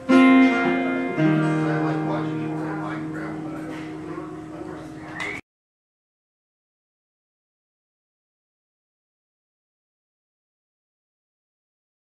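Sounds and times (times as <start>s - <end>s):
acoustic guitar chords strummed: 0.0s - 4.9s.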